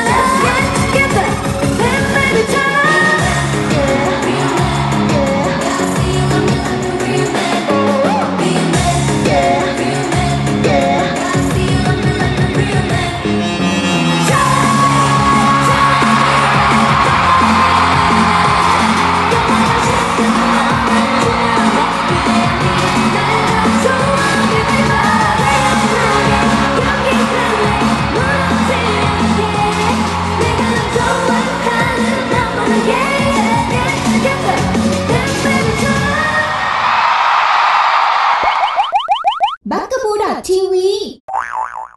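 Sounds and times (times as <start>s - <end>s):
audience yelling and cheering: 0.0s - 11.5s, 13.6s - 39.0s
pop concert music over loudspeakers: 0.0s - 37.4s.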